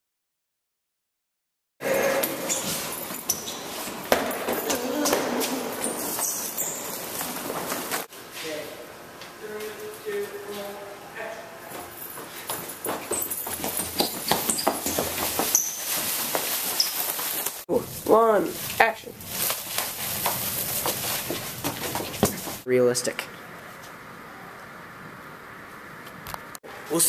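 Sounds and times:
indistinct voices: 1.8s - 2.8s, 4.5s - 6.5s
scuffling and handling noise: 11.8s - 22.7s.

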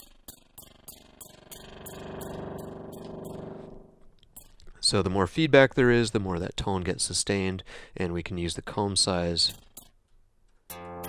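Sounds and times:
plucked string-like synth tone: 10.7s - 11.0s.

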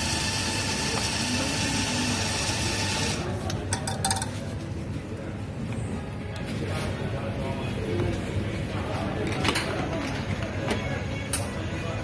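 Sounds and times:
coffee grinder motor grinding: 0.0s - 3.2s.

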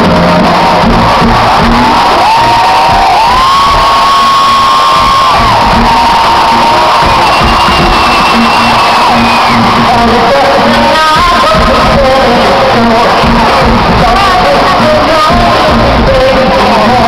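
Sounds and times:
crowd cheering: 0.0s - 17.0s
live pop music over pa: 0.0s - 17.0s
long high shouts: 0.1s - 10.0s.

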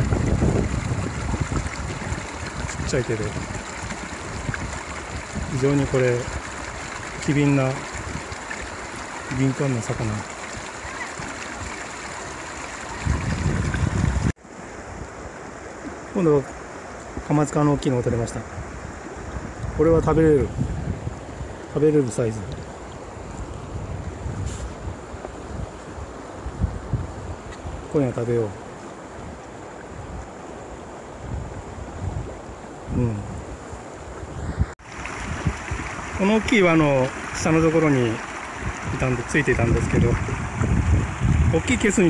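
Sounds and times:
wind buffeting microphone: 0.0s - 14.4s, 18.4s - 27.9s, 31.1s - 42.0s
fast-flowing river rushing: 0.0s - 18.2s, 33.5s - 42.0s.

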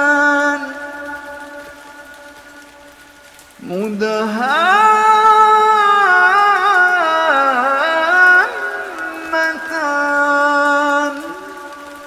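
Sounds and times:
faint rain hiss: 0.0s - 12.0s
melodic quran recitation: 0.0s - 12.0s.

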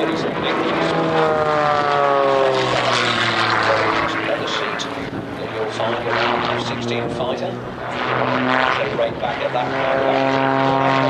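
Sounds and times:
plane piston engine and propeller: 0.0s - 11.0s.

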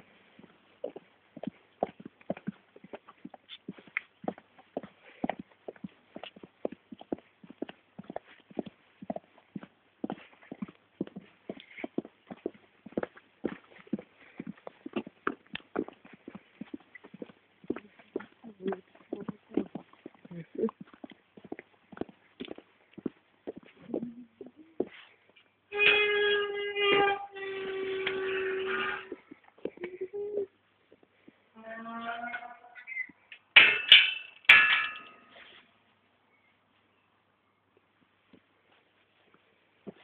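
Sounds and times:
footsteps on hard surface: 0.3s - 25.5s, 28.0s - 30.0s, 38.3s - 40.0s.

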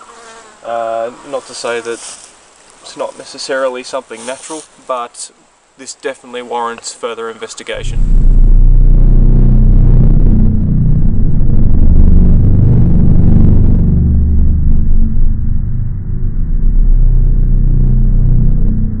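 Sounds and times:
deep rumbling drone: 7.8s - 19.0s.

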